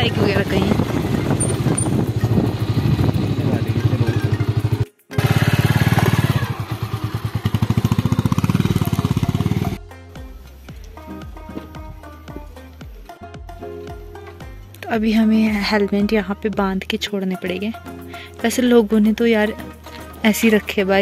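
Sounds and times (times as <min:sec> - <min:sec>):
motorcycle engine running: 0:00.0 - 0:09.9
background music: 0:00.0 - 0:21.0.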